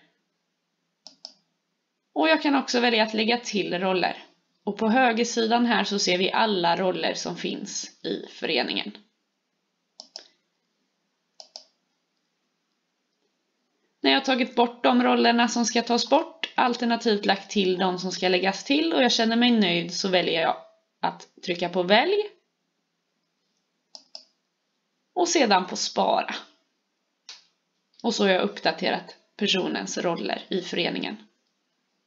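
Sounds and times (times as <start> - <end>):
computer mouse button clicking: 1.0 - 1.4, 10.0 - 10.4, 11.4 - 11.8
computer mouse clicks: 1.0 - 1.5, 10.0 - 10.4, 11.4 - 13.3, 23.2 - 24.4.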